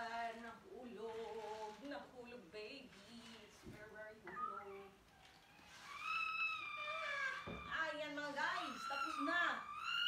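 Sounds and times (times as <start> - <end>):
baby squealing: 5.5 - 10.0.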